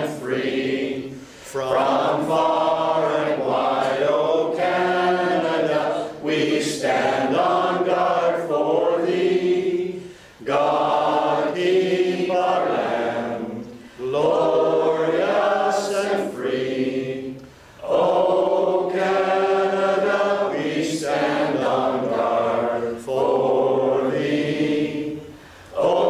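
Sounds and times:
choir singing: 0:00.0 - 0:26.0.

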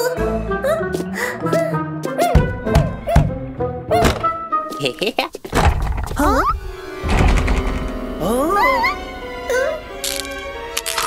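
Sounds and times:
cartoon soundtrack music: 0:00.0 - 0:05.1, 0:05.9 - 0:11.0.

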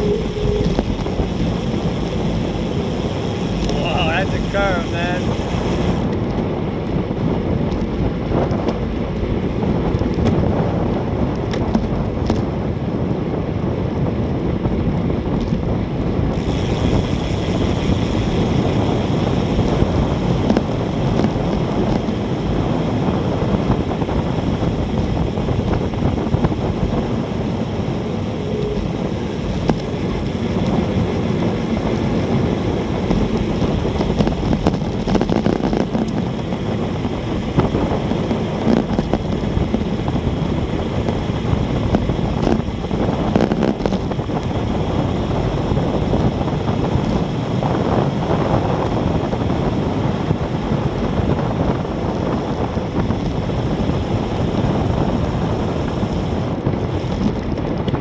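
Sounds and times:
wind roaring over microphone: 0:00.0 - 0:58.0.

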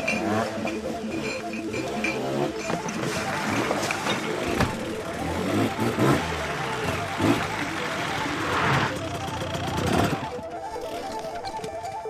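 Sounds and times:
dirt bike engine running: 0:00.0 - 0:11.8.

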